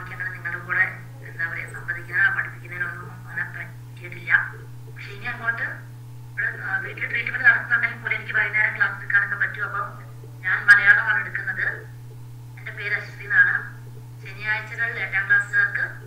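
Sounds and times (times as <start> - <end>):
person speaking over video call: 0.0 - 5.8, 6.4 - 11.9
low electrical hum: 0.0 - 16.0.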